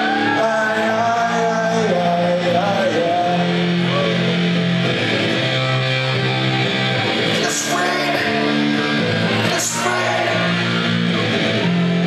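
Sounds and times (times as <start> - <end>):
man singing: 0.0 - 4.5, 7.3 - 11.3
live rock band playing: 0.0 - 12.0.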